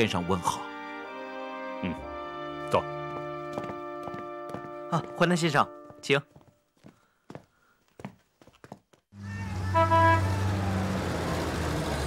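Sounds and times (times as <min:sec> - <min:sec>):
car horn honking: 0:09.2 - 0:10.9.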